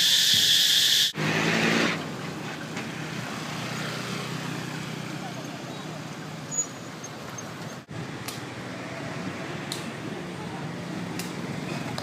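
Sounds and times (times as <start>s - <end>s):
steady background noise: 0.0s - 12.0s
vehicle engine: 0.0s - 12.0s.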